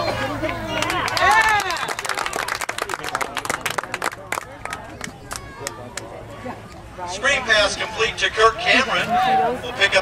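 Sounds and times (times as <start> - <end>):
people clapping: 0.4 - 6.1.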